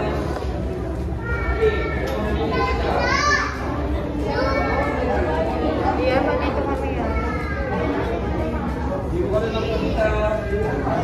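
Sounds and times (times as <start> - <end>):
crowd chatter with children: 0.0 - 11.0.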